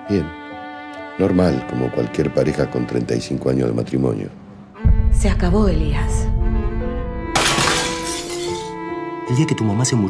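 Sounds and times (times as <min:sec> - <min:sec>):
dramatic trailer music: 0:00.6 - 0:10.0
sharp crash: 0:07.3 - 0:08.7.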